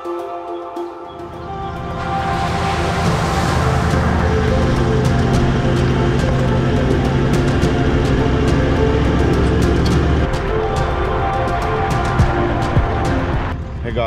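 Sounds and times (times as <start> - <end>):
background music: 0.0 - 14.0
tyres on gravel road: 1.2 - 14.0
vehicle engine low rumble: 1.2 - 14.0
tyres splashing through water: 1.4 - 10.3.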